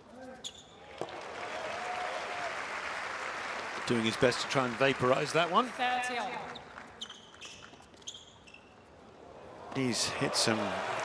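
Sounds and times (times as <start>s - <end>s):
shoes squeaking on hard court: 0.1s - 0.8s, 6.4s - 9.2s.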